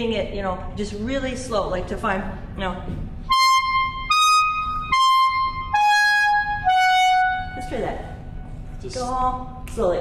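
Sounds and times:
clarinet playing long notes: 3.3s - 7.9s.

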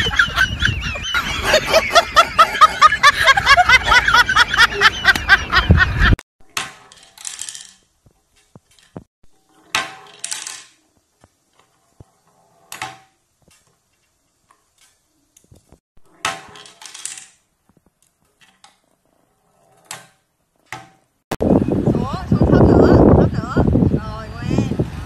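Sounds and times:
wind noise on microphone: 0.0s - 2.2s, 5.3s - 6.2s, 21.3s - 25.0s
plastic bowling pins clattering: 6.5s - 14.9s, 16.1s - 19.0s
ball rolling on wooden lane: 6.5s - 21.2s.

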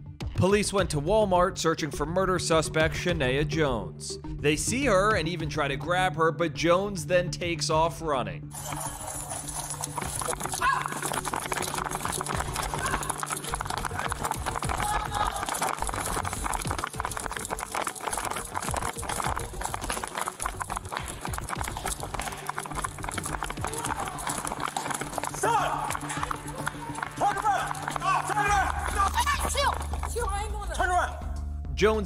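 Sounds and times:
background music: 0.0s - 32.0s
running footsteps: 8.5s - 31.4s
body camera jolting and rustling: 8.6s - 26.7s.

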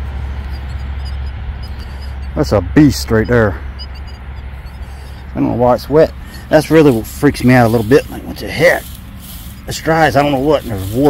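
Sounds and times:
low rumble: 0.0s - 9.7s.

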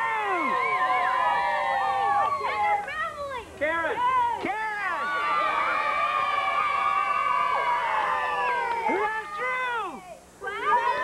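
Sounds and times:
crowd cheering and yelling: 0.0s - 3.0s, 3.9s - 11.0s.

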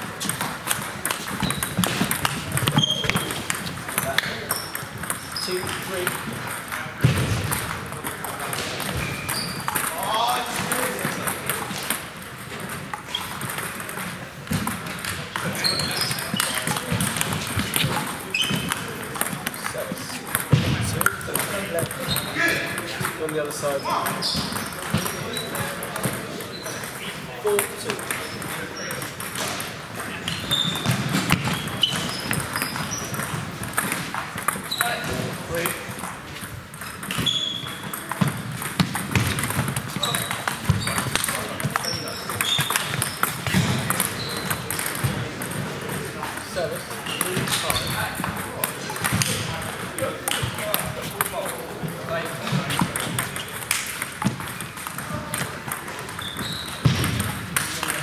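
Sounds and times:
table tennis ball clicking: 0.2s - 6.8s, 10.6s - 23.4s, 24.0s - 34.9s, 35.6s - 52.0s.

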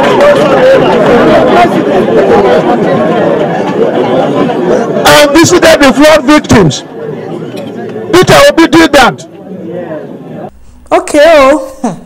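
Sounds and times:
crowd chatter: 0.0s - 11.0s
man talking: 5.0s - 6.8s, 8.1s - 9.2s.

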